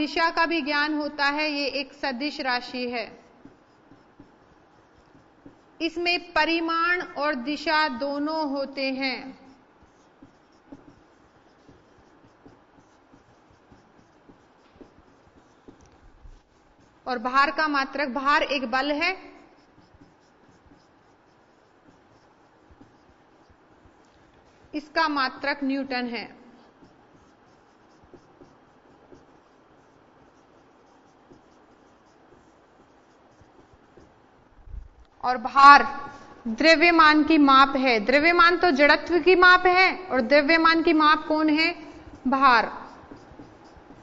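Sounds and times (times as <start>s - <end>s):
marker scratching on whiteboard: 0.0s - 44.0s.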